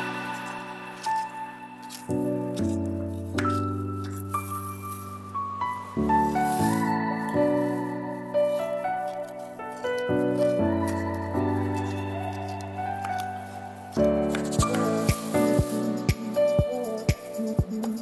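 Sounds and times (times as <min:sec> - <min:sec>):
background music sustained chords: 0:00.0 - 0:16.6.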